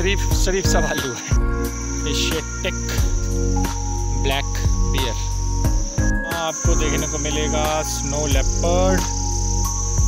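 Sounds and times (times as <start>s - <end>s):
insects droning: 0.0s - 10.0s
music: 0.0s - 10.0s.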